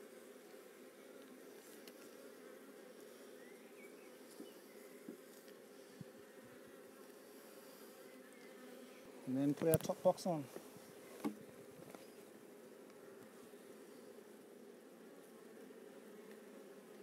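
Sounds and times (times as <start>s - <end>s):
honeybees buzzing: 0.0s - 17.0s.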